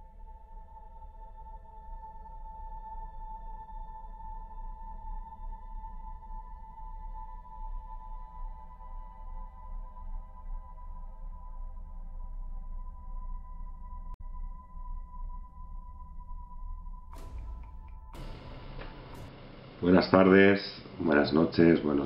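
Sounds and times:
ambient electronic drone music: 0.0s - 22.0s
low rumble: 12.4s - 22.0s.

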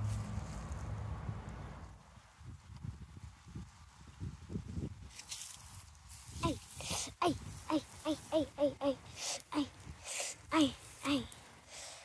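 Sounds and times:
leaves brushing: 0.0s - 1.0s, 5.0s - 12.0s.

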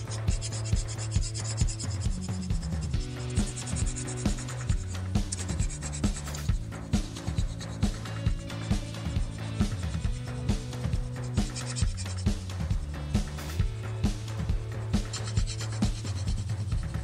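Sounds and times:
pencil scratching on paper: 0.0s - 13.6s, 14.8s - 17.0s
background music with beat: 0.0s - 17.0s.

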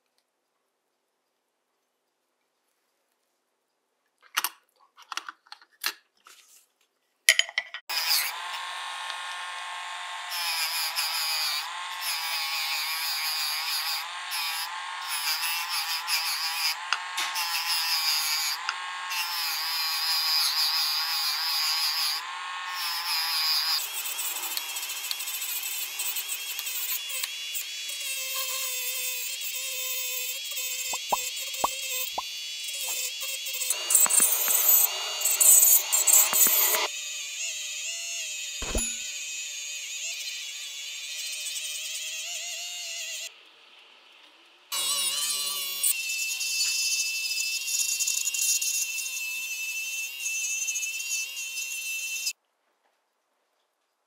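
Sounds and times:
rotary tool motor whine: 7.9s - 31.5s, 32.1s - 43.3s.

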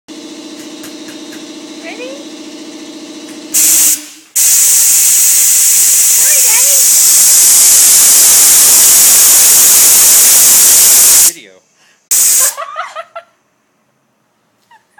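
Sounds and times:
air blower hissing blasts: 0.1s - 11.4s, 12.0s - 12.6s
steady low hum: 0.1s - 14.5s.

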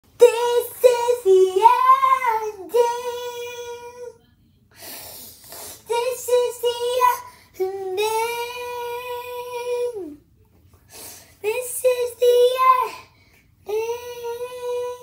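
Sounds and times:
child singing unaccompanied: 0.1s - 4.2s, 5.8s - 10.2s, 11.4s - 15.0s.

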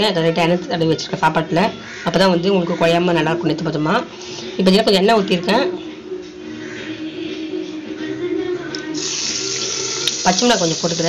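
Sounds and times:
hot oil sizzling: 9.0s - 11.0s.

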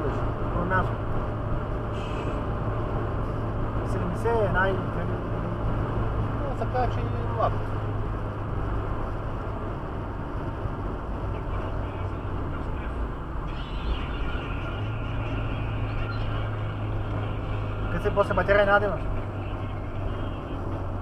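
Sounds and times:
low engine hum: 0.0s - 21.0s.

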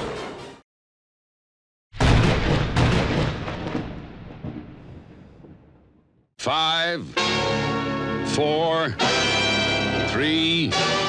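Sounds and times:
loud crash rumbling like thunder: 2.0s - 5.9s.

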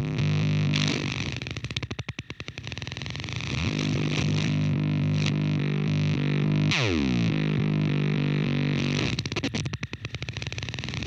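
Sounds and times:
distorted electric guitar fuzz: 0.0s - 11.0s.

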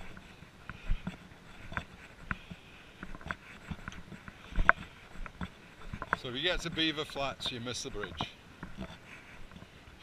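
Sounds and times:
footsteps on dirt trail: 0.0s - 10.0s.

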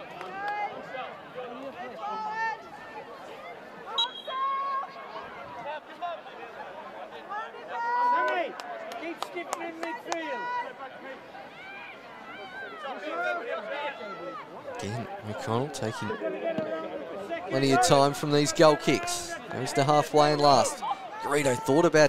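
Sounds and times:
crowd chatter and calls: 0.0s - 22.0s.

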